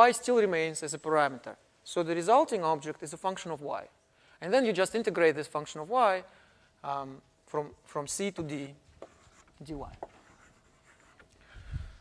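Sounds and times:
person speaking: 0.0s - 11.1s
writing scratching on a board: 9.0s - 11.3s.

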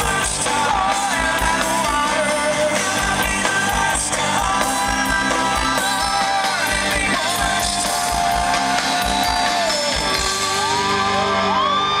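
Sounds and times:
live rock band playing: 0.0s - 12.0s
crowd whooping and cheering: 5.3s - 12.0s.

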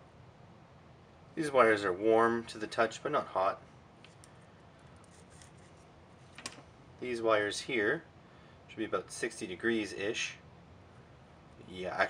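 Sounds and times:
handling noise of test wires: 4.0s - 6.7s.

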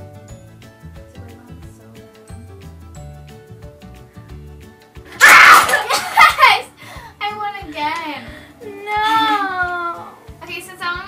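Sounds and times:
loud shriek: 5.2s - 5.8s
people laughing: 5.5s - 6.7s.

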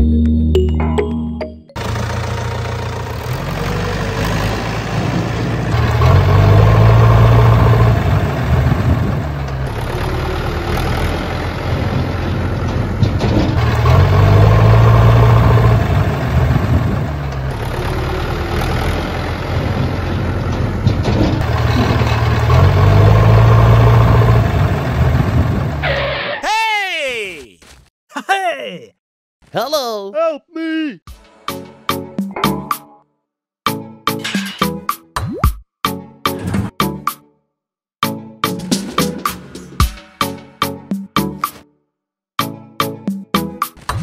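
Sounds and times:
tractor engine revving: 1.8s - 26.4s.

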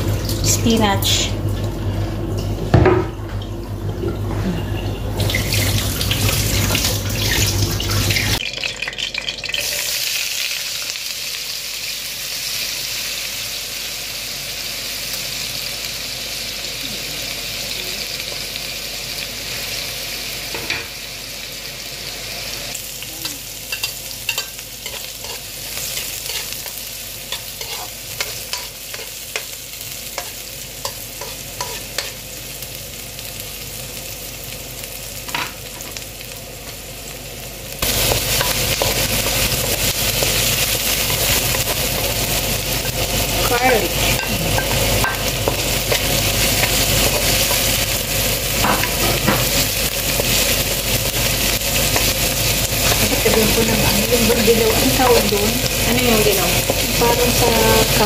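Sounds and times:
food sizzling in a frying pan: 0.0s - 58.0s
wooden spoon scraping a pan: 27.3s - 29.1s.

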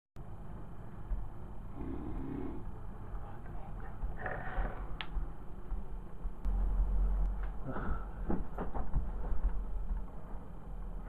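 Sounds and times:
breathy vocal sounds: 1.7s - 2.7s, 7.6s - 8.3s.

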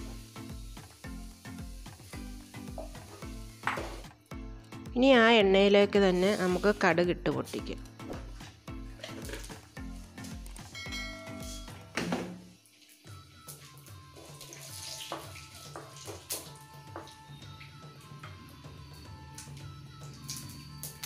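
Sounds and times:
hot oil sizzling: 0.0s - 4.2s, 6.1s - 8.0s, 12.4s - 17.3s
background music with steady tones: 0.0s - 21.0s.

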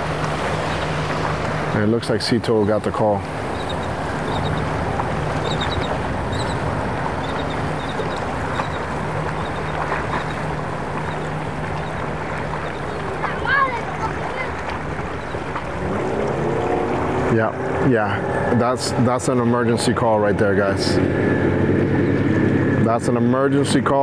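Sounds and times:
outboard motors humming: 0.0s - 24.0s
water washing along hull: 0.0s - 24.0s.

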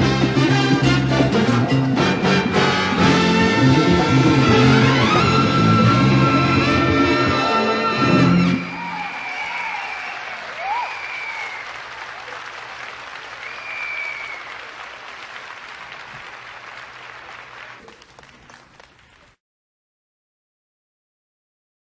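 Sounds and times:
salsa band closing chord: 0.0s - 9.0s
audience applauding and cheering: 0.6s - 19.4s.

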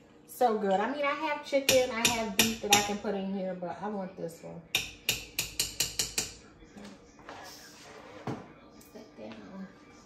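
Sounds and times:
spoon tapping glass jar: 4.8s - 6.4s.

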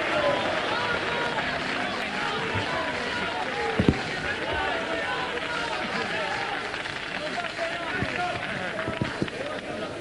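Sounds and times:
indistinct voices talking: 0.0s - 10.0s
dull knocks: 3.8s - 4.3s, 8.0s - 9.5s.

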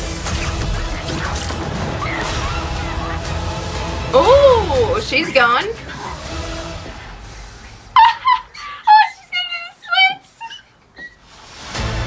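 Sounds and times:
woman squealing laughter: 7.9s - 11.2s.

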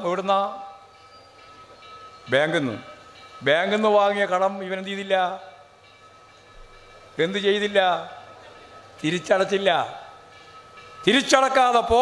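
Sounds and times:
man speaking over public address: 0.0s - 0.7s, 2.3s - 5.5s, 7.2s - 8.2s, 9.0s - 10.1s, 11.0s - 12.0s.

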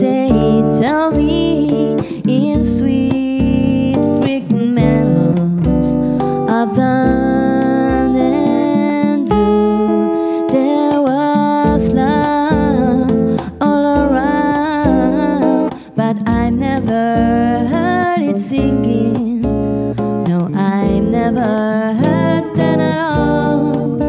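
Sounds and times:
electric guitar playing chords: 0.0s - 24.0s
woman singing wordless melody: 0.0s - 24.0s.

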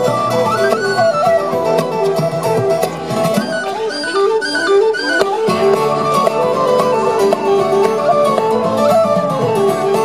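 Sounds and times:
acoustic guitar accompaniment: 0.0s - 10.0s
whistle playing quick melody: 0.2s - 2.6s, 3.3s - 10.0s.

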